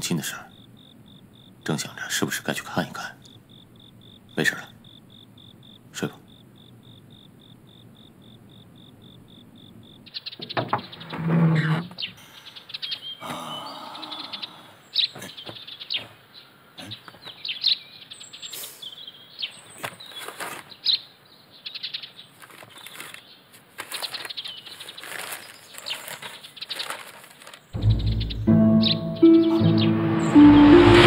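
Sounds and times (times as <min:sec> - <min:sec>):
cricket chirping: 0:00.0 - 0:20.2
birds chirping and tweeting: 0:00.0 - 0:30.6
loud noise: 0:27.8 - 0:31.0.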